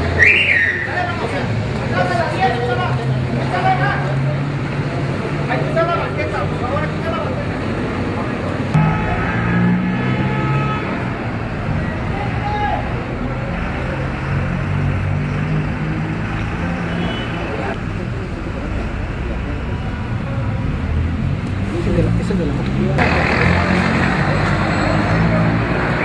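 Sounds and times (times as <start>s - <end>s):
traffic din: 0.0s - 26.0s.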